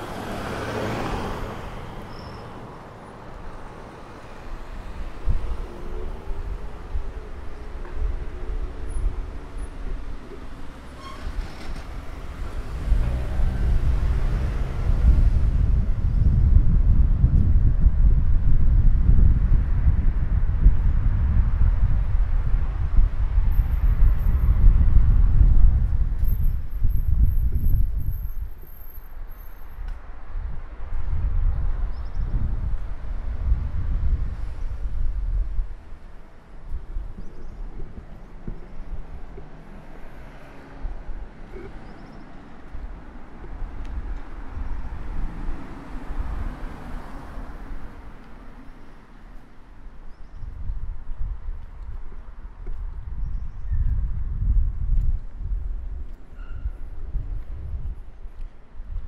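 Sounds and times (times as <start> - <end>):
car engine passing: 0.0 - 3.0, 10.8 - 15.8
wind buffeting microphone: 0.0 - 59.0.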